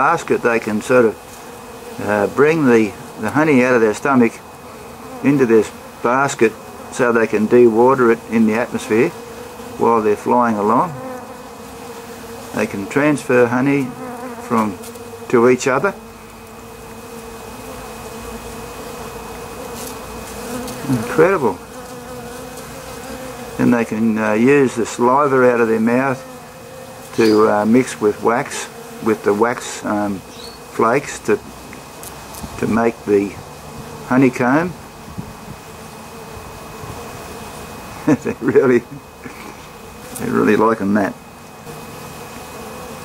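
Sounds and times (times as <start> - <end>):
honeybees buzzing: 0.0 - 43.0.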